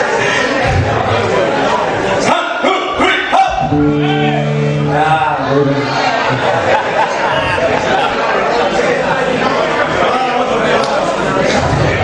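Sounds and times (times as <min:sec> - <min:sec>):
crowd shouting and whooping: 0:02.7 - 0:08.3
band holding a steady note: 0:03.6 - 0:06.7.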